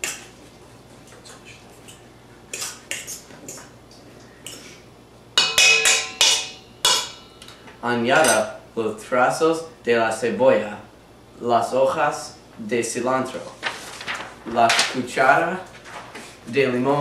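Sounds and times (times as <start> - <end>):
fork clinking against bowl: 5.4 - 7.5.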